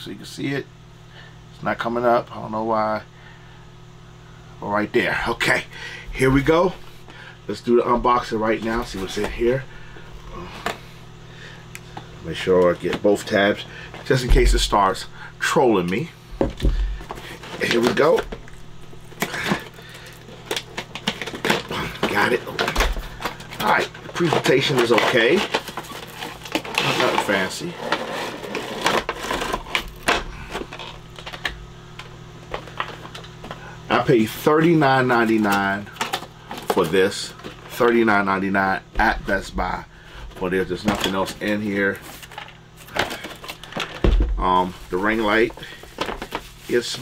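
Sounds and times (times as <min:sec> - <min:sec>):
packaging rustling: 0:16.6 - 0:33.6, 0:40.4 - 0:47.0.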